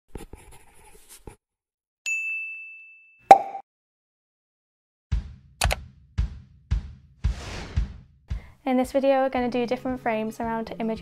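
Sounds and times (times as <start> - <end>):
high ringing ding: 2.1 - 3.6.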